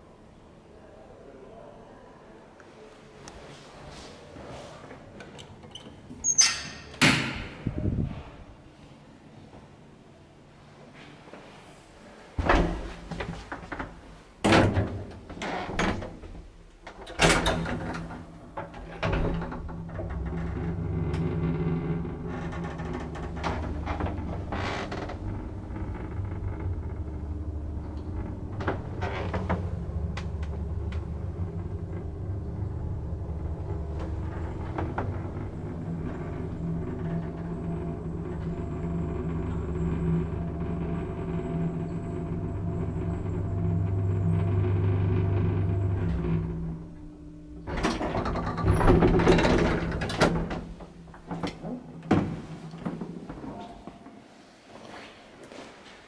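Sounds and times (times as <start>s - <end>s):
elevator drive hum and rumble: 7.2s - 8.6s, 16.8s - 53.9s.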